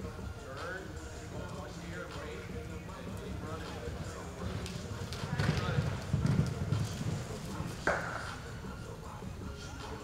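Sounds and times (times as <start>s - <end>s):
horse hooves thudding on dirt: 3.2s - 8.4s.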